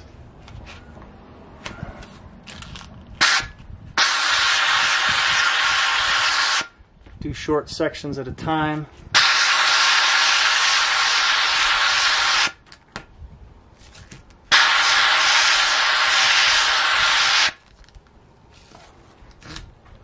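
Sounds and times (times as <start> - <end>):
steam cleaner hissing: 9.2 - 12.5, 14.5 - 17.6.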